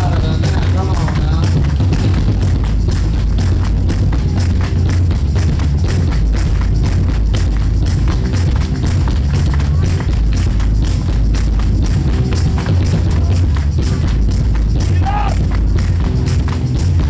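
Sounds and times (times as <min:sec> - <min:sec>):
drum kit: 0:00.0 - 0:17.0
heavy bass: 0:00.0 - 0:17.0.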